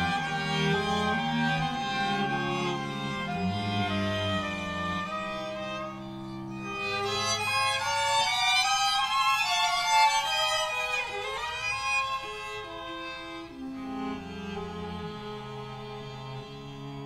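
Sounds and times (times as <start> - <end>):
string quartet playing: 0.0 - 17.0.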